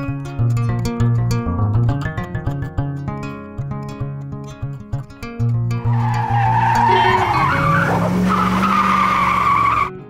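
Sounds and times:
tyre screech sound effect: 6.0s - 9.9s.

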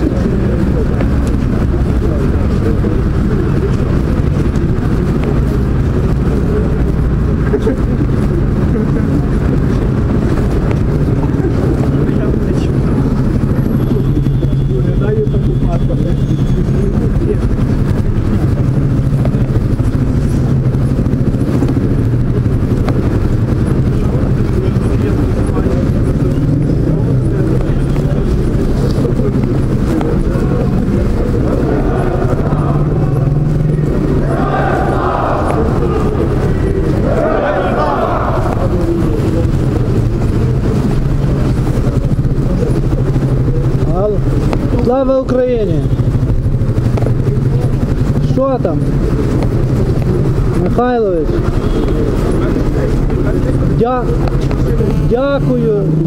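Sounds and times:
car engine and road drone: 0.0s - 56.0s
indistinct voices: 0.0s - 56.0s.

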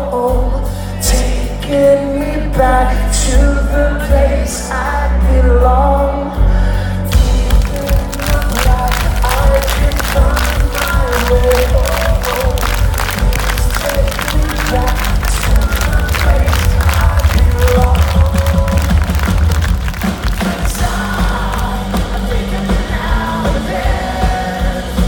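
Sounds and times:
vocals: 0.0s - 25.0s
crowd noise: 7.1s - 25.0s
rock band playing live: 7.1s - 25.0s
fast driving drum beat: 7.2s - 25.0s.

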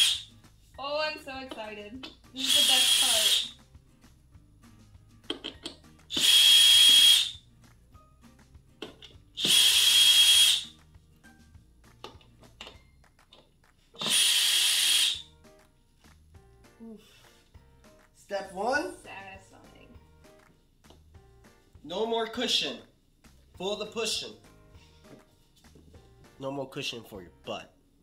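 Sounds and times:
cordless drill motor whine: 2.4s - 3.5s, 6.1s - 7.3s, 9.4s - 10.7s, 14.0s - 15.2s
handling clicks and knocks: 5.2s - 5.9s.

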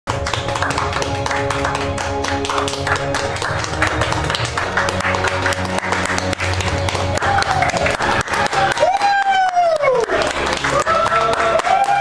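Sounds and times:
music with held notes: 0.1s - 12.0s
people clapping: 0.1s - 12.0s.

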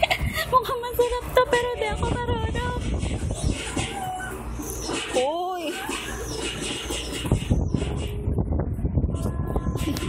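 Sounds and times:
baby squealing: 3.6s - 6.9s.

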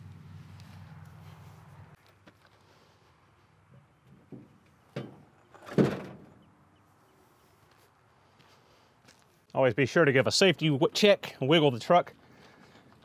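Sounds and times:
heavy thunk of truck on stand: 4.3s - 6.4s.

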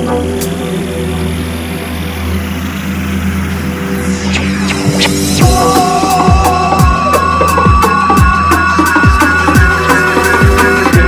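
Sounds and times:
low synth chords: 0.0s - 11.0s
sweeping synth effects: 0.0s - 11.0s.

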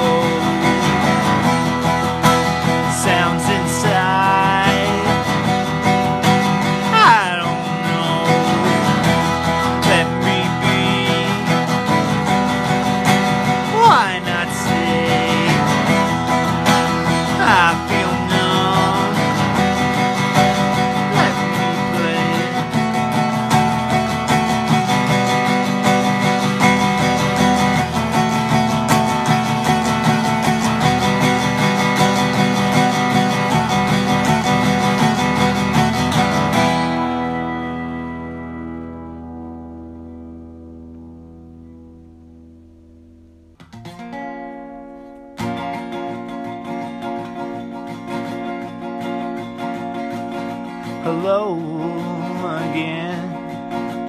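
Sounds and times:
sliding guitar notes: 0.0s - 54.0s
strummed acoustic guitar: 0.0s - 54.0s.

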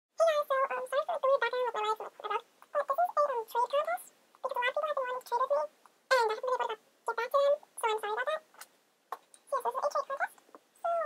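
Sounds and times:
high-pitched sped-up voice: 0.2s - 8.5s, 9.5s - 11.0s.

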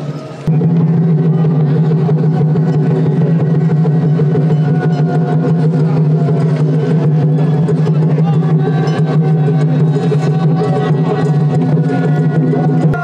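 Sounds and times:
loud steady engine-like drone: 0.0s - 13.0s.

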